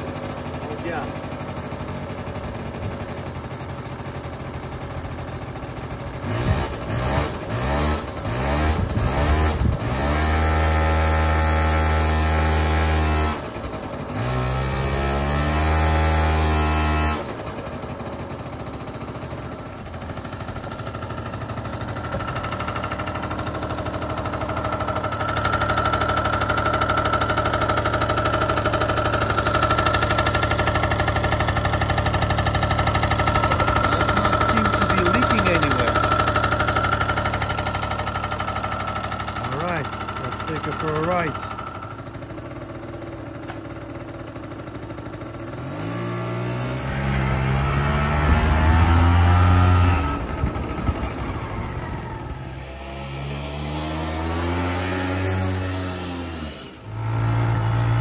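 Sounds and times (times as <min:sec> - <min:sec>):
two-stroke engine revving: 0:00.0 - 0:58.0.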